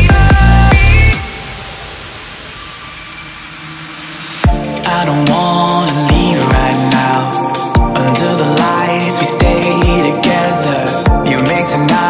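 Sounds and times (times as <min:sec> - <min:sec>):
white-noise sweep hiss: 0:00.0 - 0:12.0.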